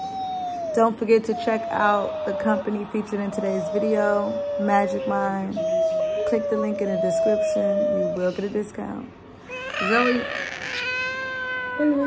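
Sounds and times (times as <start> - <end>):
toddler whining: 0.0 - 2.5, 3.4 - 8.5, 9.5 - 12.0
toddler squealing: 0.0 - 2.6, 3.4 - 8.4, 9.5 - 12.0.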